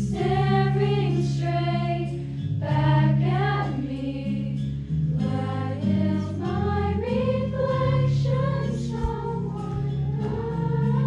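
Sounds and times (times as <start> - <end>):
girls choir singing: 0.0 - 4.6, 5.2 - 11.0.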